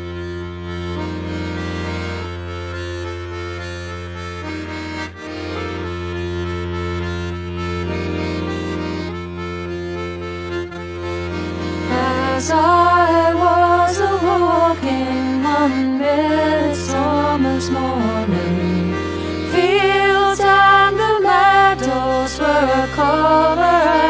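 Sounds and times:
accordion playing slow chords: 0:00.0 - 0:24.0
low drone: 0:05.1 - 0:24.0.

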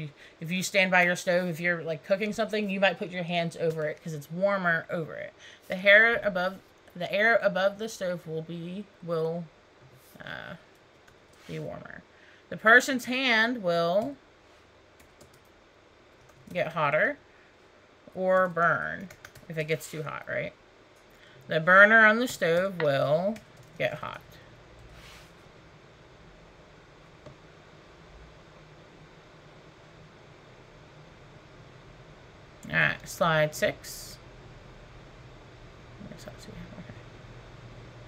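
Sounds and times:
faint steady hiss: 0:00.0 - 0:38.0
low hum: 0:00.0 - 0:38.0.

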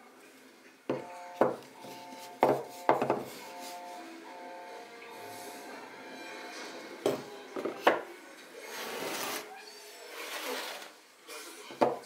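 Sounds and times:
cutting board knocking on table: 0:00.9 - 0:01.6, 0:02.4 - 0:03.3
wood scraping over wood: 0:10.1 - 0:10.9.

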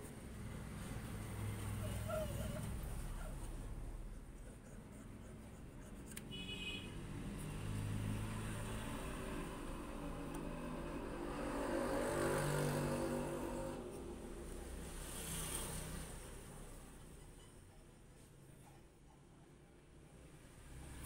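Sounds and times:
vehicle engine passing by: 0:00.0 - 0:04.4, 0:06.9 - 0:17.2, 0:20.2 - 0:21.0.

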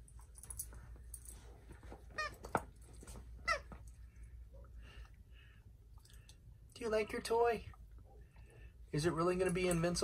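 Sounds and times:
dog toy squeaking: 0:02.1 - 0:02.6, 0:03.4 - 0:03.8.

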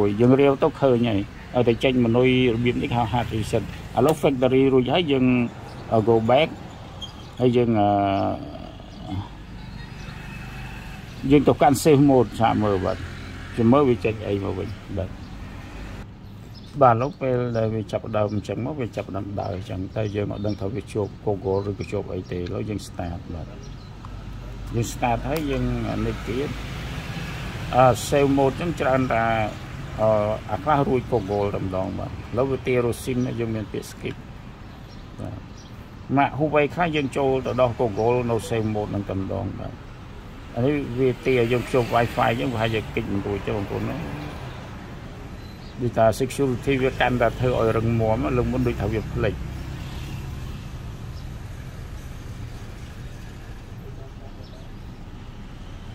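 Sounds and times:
man speaking: 0:00.0 - 0:06.6, 0:07.4 - 0:09.4, 0:40.6 - 0:44.2, 0:45.8 - 0:49.4.

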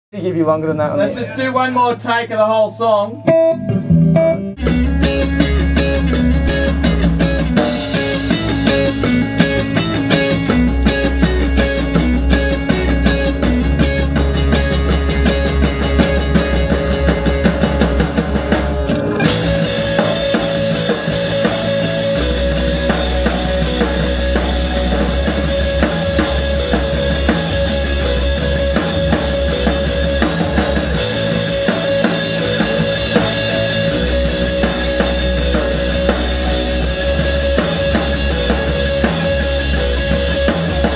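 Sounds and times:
rock band playing: 0:00.2 - 0:40.9
electric guitar: 0:00.8 - 0:40.9
drum kit: 0:03.3 - 0:40.9.

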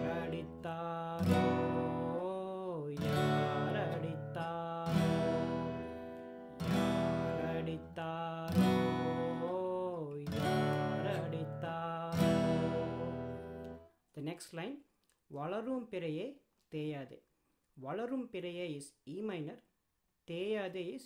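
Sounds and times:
man singing: 0:00.0 - 0:06.0, 0:06.6 - 0:14.3
acoustic guitar strummed slowly: 0:00.0 - 0:13.8.

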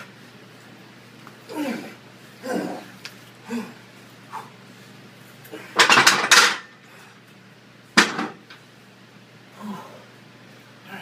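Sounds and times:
dumbbells clanking down: 0:05.6 - 0:06.7, 0:08.0 - 0:08.4.

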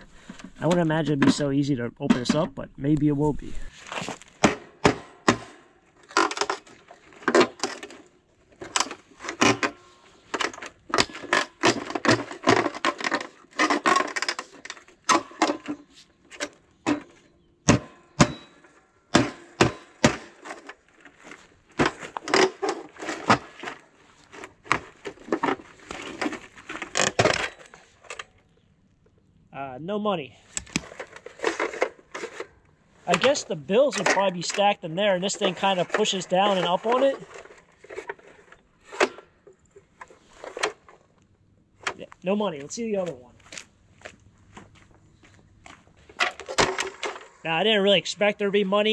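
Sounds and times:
hatchet striking metal box: 0:17.7 - 0:20.3.

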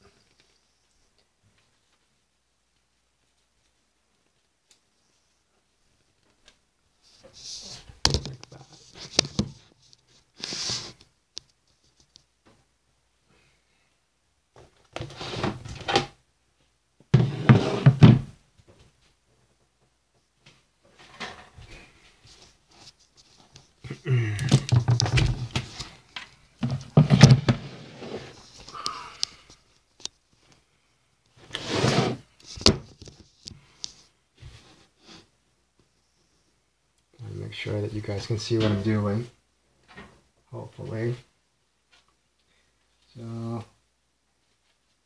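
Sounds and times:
cardboard tube knocking and rustling: 0:24.5 - 0:25.9.

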